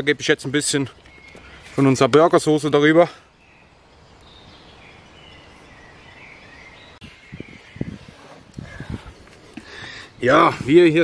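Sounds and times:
faint bird song: 0.0 - 11.0.

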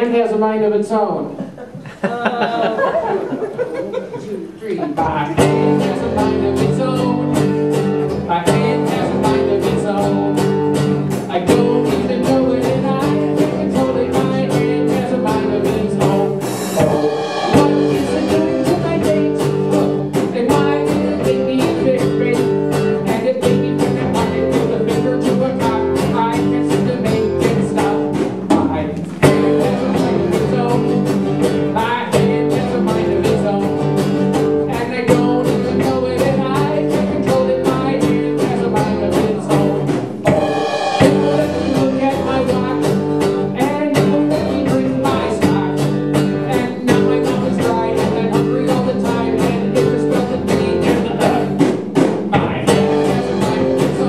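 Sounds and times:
steady drum beat: 4.4 - 54.0
strummed acoustic guitar: 5.0 - 54.0.

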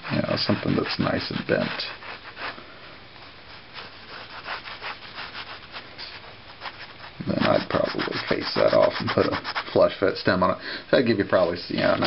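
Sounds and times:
pen scratching across paper: 0.0 - 2.6, 3.5 - 9.8.

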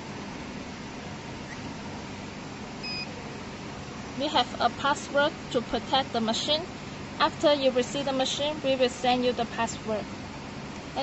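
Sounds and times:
steady background noise: 0.0 - 11.0
short electronic beep: 2.8 - 3.1.

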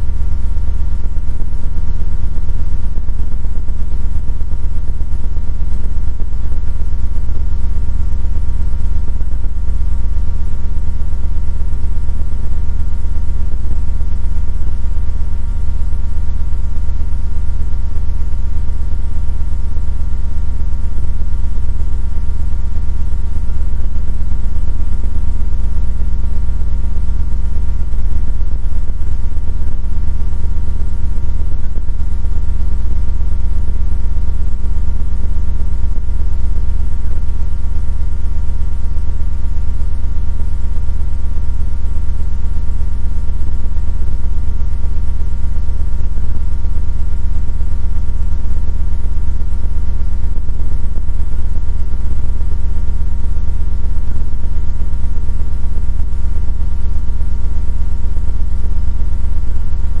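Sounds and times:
loud electrical hum with tones: 0.0 - 60.0.

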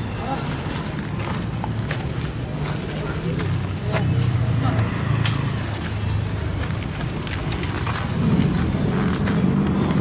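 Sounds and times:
road traffic rumble: 0.0 - 10.0
people chatting: 1.9 - 5.2.

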